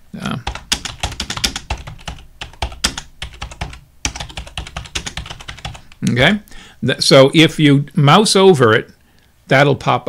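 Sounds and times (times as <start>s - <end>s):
typing on a computer keyboard: 0.4s - 6.0s.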